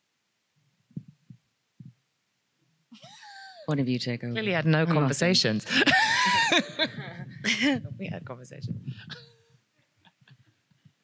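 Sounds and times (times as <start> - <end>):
microphone handling thumps: 6.8 - 9.3.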